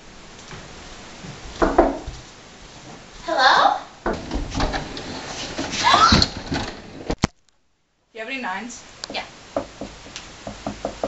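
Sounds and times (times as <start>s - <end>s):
quick knocks: 9.6s - 11.0s.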